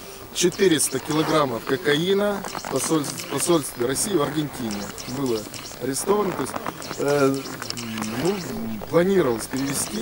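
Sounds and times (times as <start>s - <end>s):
man talking: 0.4s - 10.0s.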